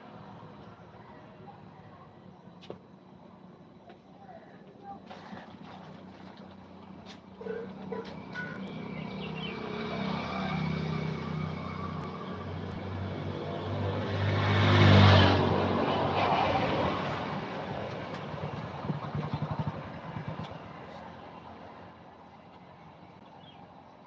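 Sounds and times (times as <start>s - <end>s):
vehicle engine passing by: 7.6s - 21.7s.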